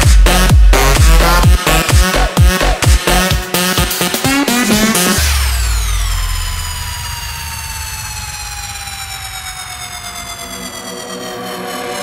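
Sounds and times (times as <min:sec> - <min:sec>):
low bass drone: 0:00.0 - 0:03.3, 0:04.8 - 0:12.0
synth tone sliding downward: 0:04.9 - 0:12.0.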